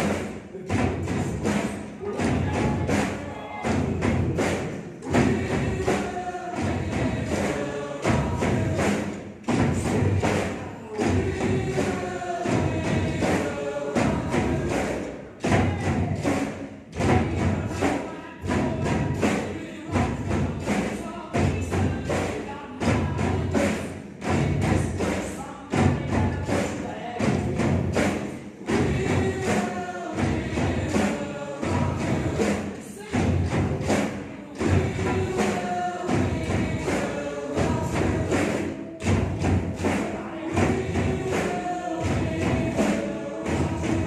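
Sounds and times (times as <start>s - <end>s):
backing track with singing: 0.0s - 44.0s
many drum kits playing: 0.0s - 44.0s.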